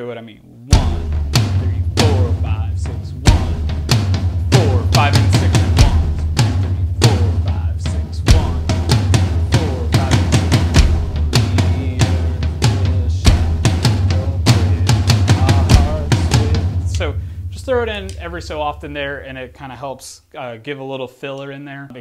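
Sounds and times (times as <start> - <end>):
drum pad triggering noises: 0.7 - 19.5
electronic drum kit groove: 0.7 - 19.5.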